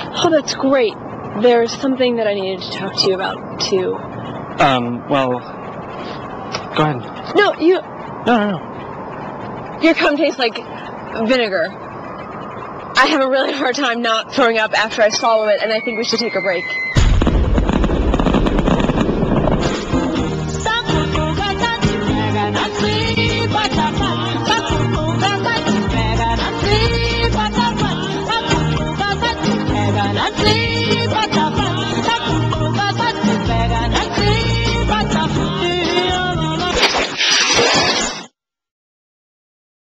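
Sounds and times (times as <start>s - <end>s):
fireworks rumbling and crackling: 17.0s - 20.5s
loud hissing static burst: 17.0s - 20.7s.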